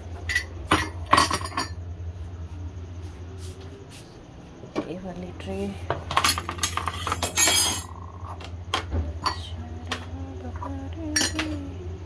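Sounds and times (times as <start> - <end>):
crockery clattering: 0.3 - 1.8, 6.0 - 8.4
mugs clinking on countertop: 0.3 - 1.8, 8.8 - 10.0, 11.2 - 11.6.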